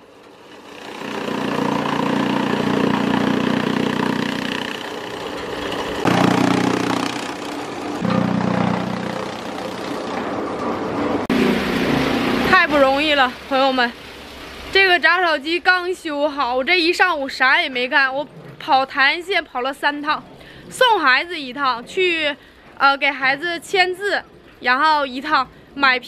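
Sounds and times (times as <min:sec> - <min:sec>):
straw chopper machine running: 0:00.0 - 0:13.0.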